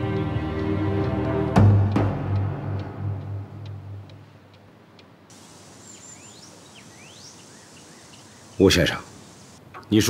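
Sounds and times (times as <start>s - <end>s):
dramatic music: 0.0s - 4.0s
faint regular ticks: 3.2s - 9.6s
birds chirping: 5.3s - 10.0s.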